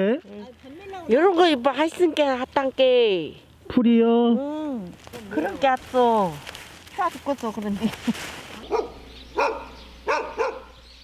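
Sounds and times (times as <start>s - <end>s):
dog barking: 8.7s - 10.8s.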